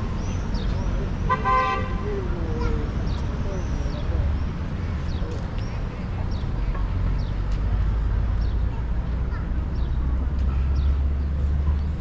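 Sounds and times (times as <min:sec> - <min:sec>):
small birds chirping: 0:00.0 - 0:01.3, 0:02.0 - 0:12.0.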